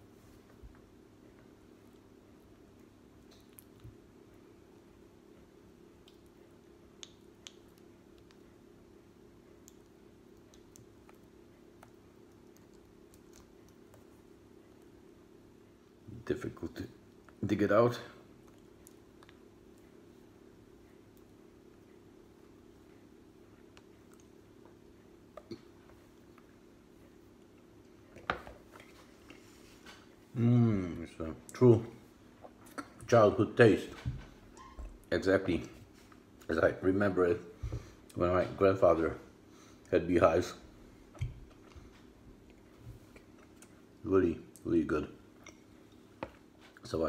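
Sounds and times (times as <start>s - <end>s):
low room hum: 0.0s - 47.0s
chewing mouth sounds: 9.5s - 14.1s.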